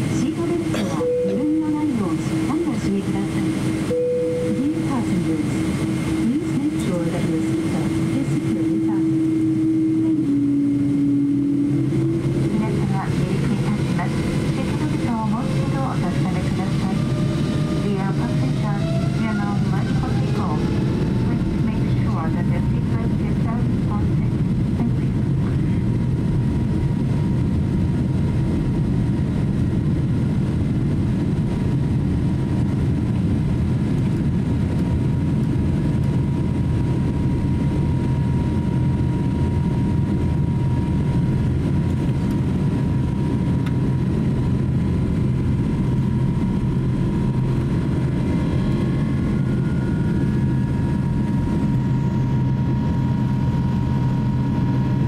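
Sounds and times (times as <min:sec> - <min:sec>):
jet engine roar with whine: 0:00.0 - 0:55.0.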